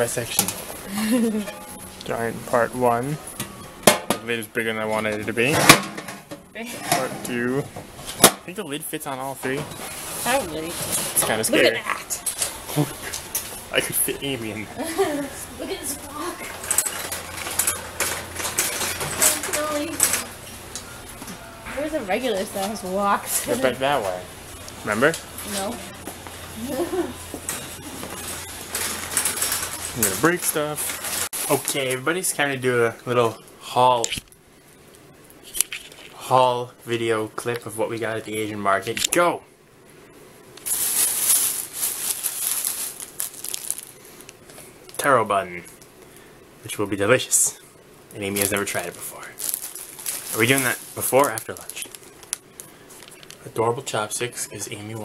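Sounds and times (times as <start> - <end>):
metal kitchenware clinking: 1.3 - 2.3, 16.4 - 20.6, 27.4 - 31.2
grocery bags rustling: 9.2 - 21.1, 21.8 - 32.5, 40.6 - 44.6, 48.2 - 54.9.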